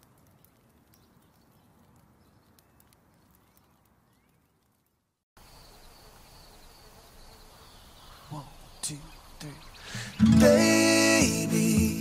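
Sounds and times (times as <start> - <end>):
faint hiss: 5.4 - 10.3.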